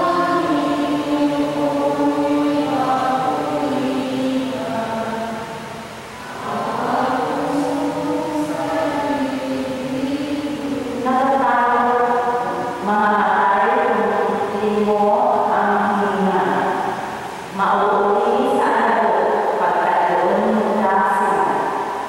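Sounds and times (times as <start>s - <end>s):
voices singing slow chant: 0.0s - 22.0s.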